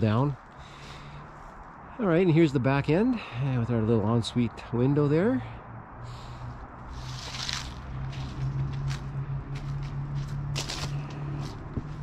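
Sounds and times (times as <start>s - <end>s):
footsteps on dry leaves: 6.9s - 12.0s.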